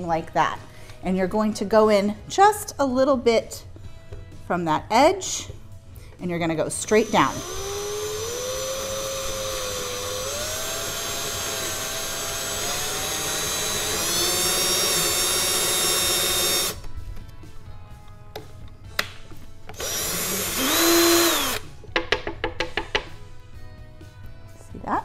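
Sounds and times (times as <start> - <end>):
power drill boring into wood: 6.8 - 16.8, 19.8 - 21.6.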